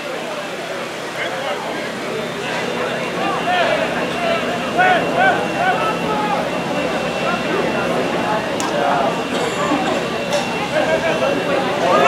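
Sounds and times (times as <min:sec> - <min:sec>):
people shouting: 0:03.0 - 0:12.0.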